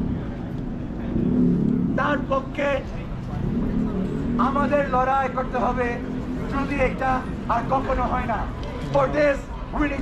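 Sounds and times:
city street traffic hum: 0.0 - 10.0.

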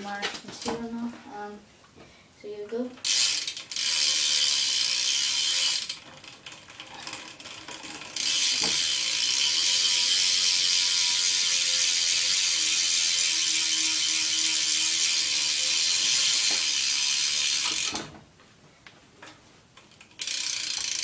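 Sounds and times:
bicycle hub ratchet buzzing: 3.0 - 18.1, 20.0 - 21.0.

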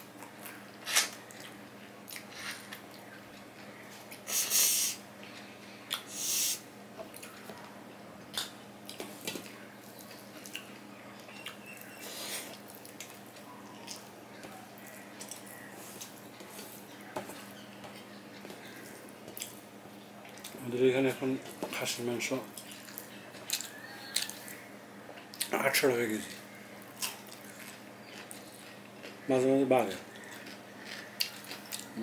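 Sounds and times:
man chewing crunchy rice: 0.0 - 6.2, 7.0 - 20.6, 22.5 - 25.5, 26.2 - 32.0.

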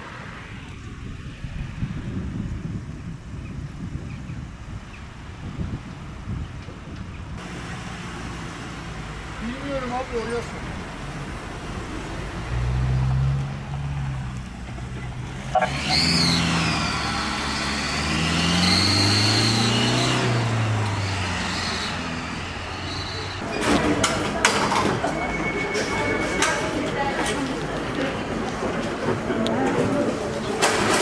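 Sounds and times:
van engine pulling away: 7.3 - 23.4
voices: 9.0 - 12.6, 20.7 - 31.0
stretcher clattering on wheels: 28.5 - 31.0.

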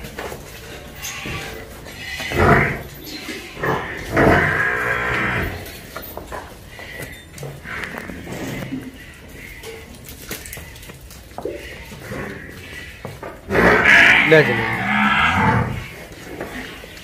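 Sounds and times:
water buffalo bellowing: 1.0 - 5.7, 11.5 - 16.1.

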